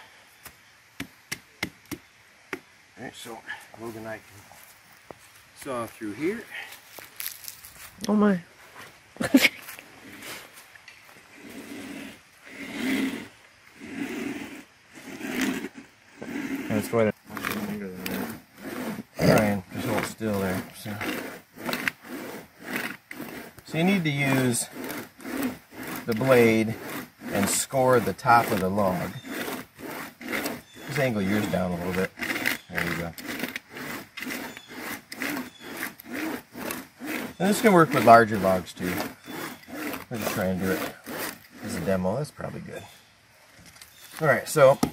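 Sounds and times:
saw rasping through wood: 0:11.3 - 0:42.1.

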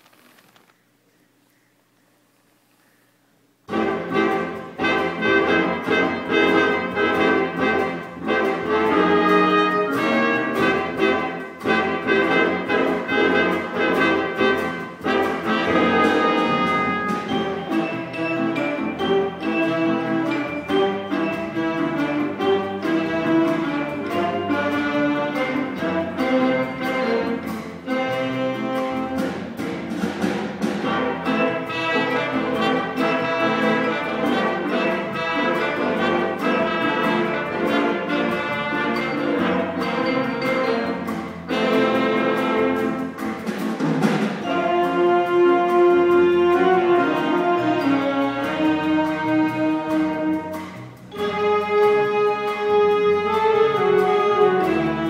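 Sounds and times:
jazz big band playing: 0:03.6 - 0:55.0.

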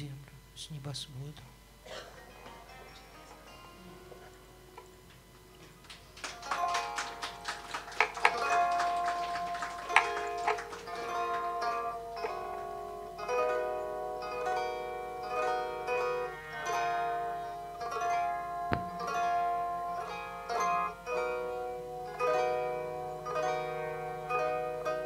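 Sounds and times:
plucked zither melody: 0:02.2 - 0:25.0.

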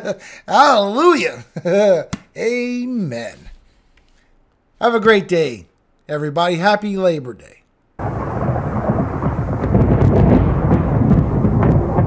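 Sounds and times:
low rumble of thunder: 0:08.0 - 0:12.0
rain: 0:08.0 - 0:12.0.

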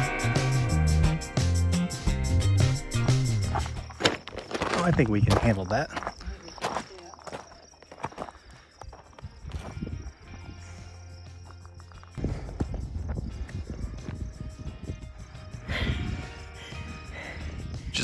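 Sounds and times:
background music: 0:00.0 - 0:04.0, 0:10.1 - 0:18.0
footsteps on gravel: 0:03.0 - 0:14.8
wind buffeting microphone: 0:08.5 - 0:11.0, 0:12.0 - 0:18.0.

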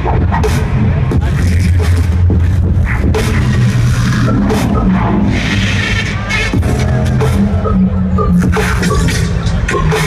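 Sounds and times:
drum and bass music: 0:00.0 - 0:10.0.

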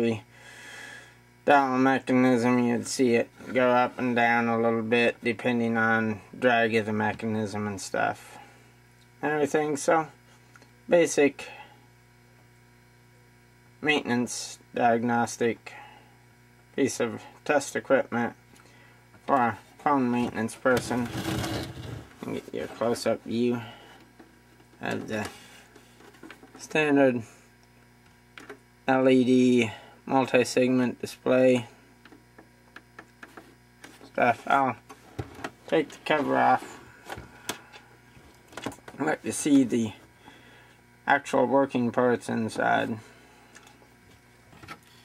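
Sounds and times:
faint mains hum: 0:00.0 - 0:45.0
man speaking: 0:22.2 - 0:23.8, 0:24.8 - 0:25.4, 0:34.1 - 0:34.8, 0:35.7 - 0:36.8.

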